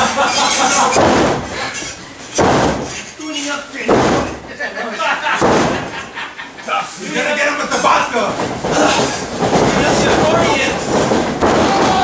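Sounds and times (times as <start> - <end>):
heavy thuds on wrestling ring: 0.8 - 1.6, 2.3 - 3.0, 3.9 - 4.5, 5.4 - 6.0, 8.4 - 12.0
crowd voices: 6.6 - 12.0.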